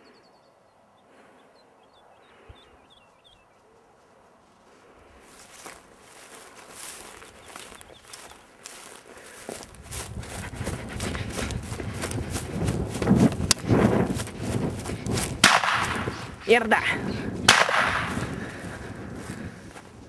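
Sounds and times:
footsteps through dry scrub: 3.2 - 20.0
microphone handling noise: 9.8 - 19.9
sharp snap: 15.4 - 16.2, 17.5 - 18.3.

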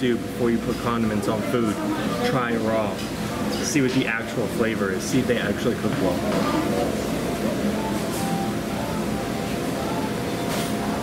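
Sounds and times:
faint background voices: 0.0 - 11.0
ventilation fan humming: 0.0 - 11.0.

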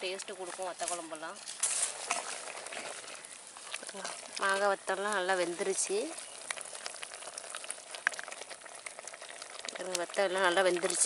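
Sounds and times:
curry bubbling in a pot: 0.0 - 11.0.

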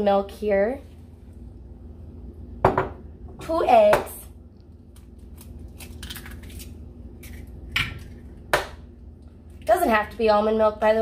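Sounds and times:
egg cracking on bowl rim: 4.9 - 8.8.

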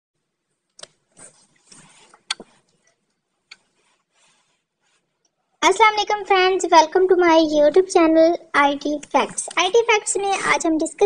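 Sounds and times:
soft rustles: 0.9 - 5.4.

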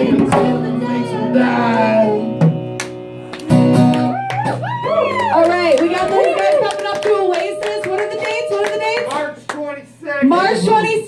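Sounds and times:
audience clapping: 2.8 - 9.8.

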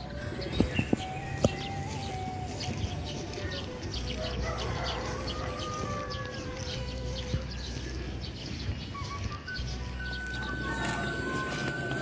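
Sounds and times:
birds chirping: 0.0 - 12.0
long drawn-out tones: 10.0 - 12.0.

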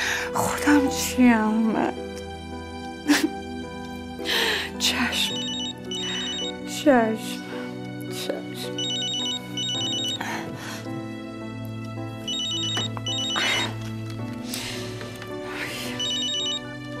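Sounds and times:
soft background music: 0.0 - 17.0
mobile phone ringtone trilling: 5.4 - 6.6, 8.8 - 10.2, 12.3 - 13.8, 16.0 - 16.8.

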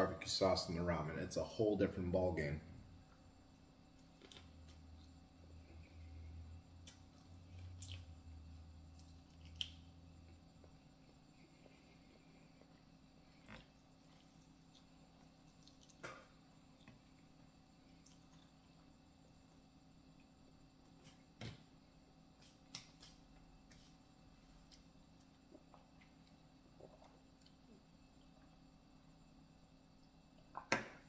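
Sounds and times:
person eating clicks and smacks: 6.8 - 8.1, 8.9 - 9.9, 13.5 - 17.0, 22.4 - 23.4.

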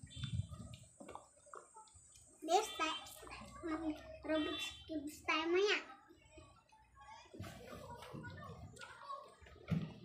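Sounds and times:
child speaking: 2.4 - 6.6.

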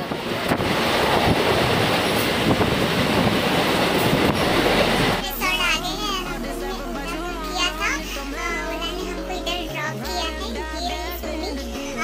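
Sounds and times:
train wheels on track: 0.0 - 5.2
music with singing voice: 4.8 - 12.0.

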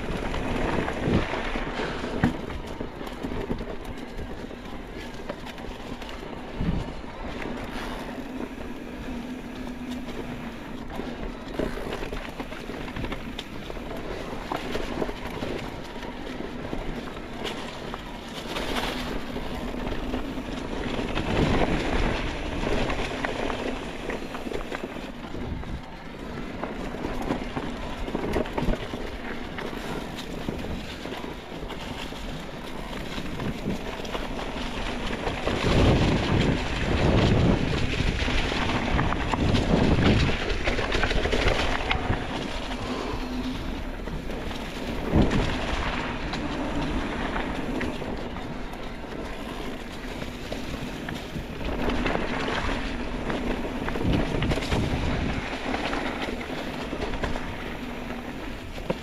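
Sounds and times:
wind rushing over microphone: 0.0 - 16.9, 18.0 - 59.0
bike rattling over bumps: 0.0 - 59.0
tyres crunching over leaves and dirt: 0.0 - 59.0.

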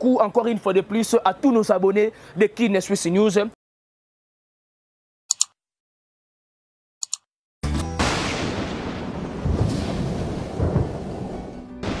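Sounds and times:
music: 7.6 - 8.1, 11.4 - 12.0
deep booms: 8.0 - 12.0
rushing thunder-like sound effect: 8.0 - 12.0.

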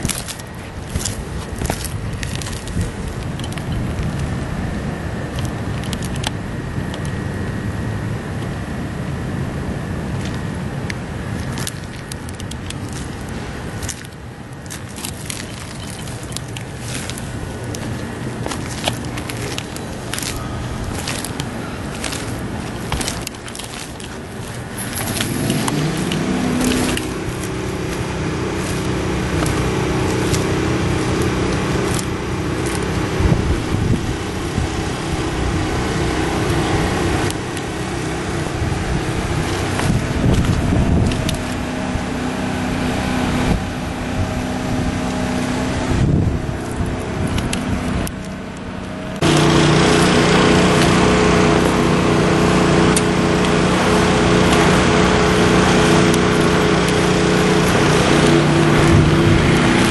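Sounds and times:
engine droning hum: 0.0 - 59.9.

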